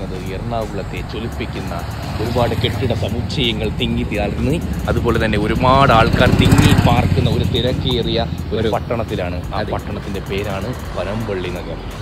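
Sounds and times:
motor vehicle passing: 0:00.0 - 0:12.0
street traffic rumble: 0:00.0 - 0:12.0
voices talking: 0:00.0 - 0:12.0.

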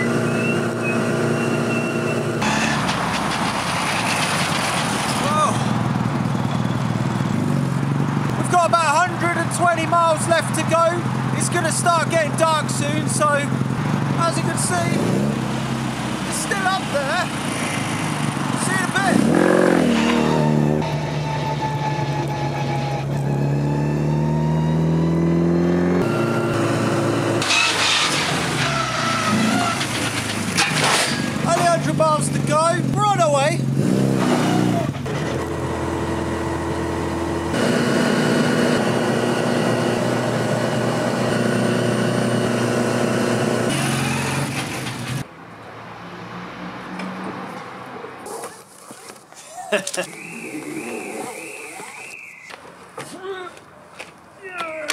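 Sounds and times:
car engine accelerating: 0:09.1 - 0:45.2.

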